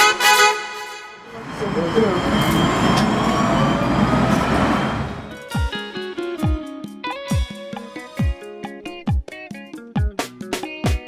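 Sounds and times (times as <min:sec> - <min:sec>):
tram rumble: 0:01.2 - 0:05.6
voices: 0:01.3 - 0:03.9
plucked guitar music: 0:05.4 - 0:11.0.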